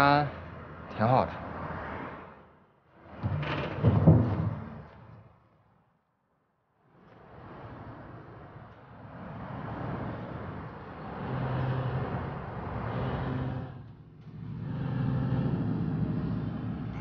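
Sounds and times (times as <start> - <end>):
road traffic rumble: 0.0 - 5.8, 6.7 - 17.0.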